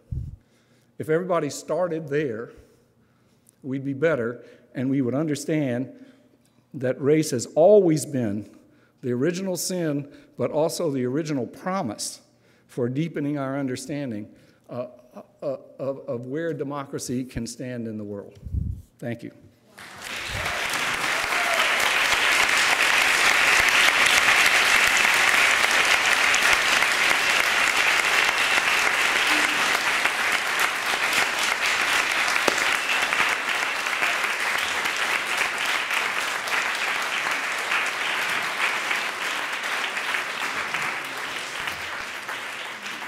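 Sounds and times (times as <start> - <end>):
audience applauding: 19.7 - 43.0.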